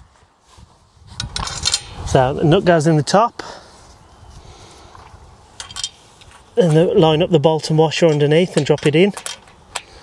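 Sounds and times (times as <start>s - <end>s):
metal fixings clinking on bracket: 1.1s - 2.2s, 5.0s - 10.0s.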